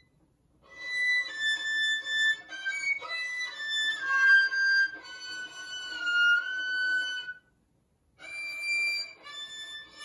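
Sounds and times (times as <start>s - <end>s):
bowed violin notes: 0.0s - 7.5s, 8.2s - 10.0s.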